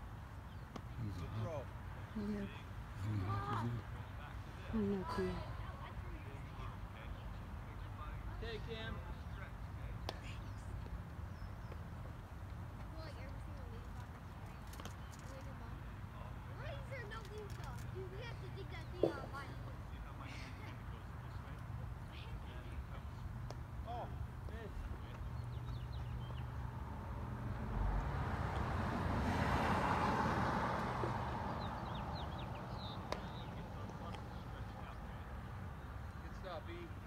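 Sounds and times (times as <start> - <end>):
car passing: 25.8 - 37.0.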